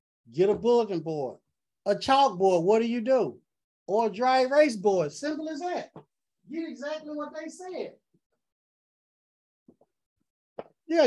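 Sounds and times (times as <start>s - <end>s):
man speaking: 0.3s - 8.0s.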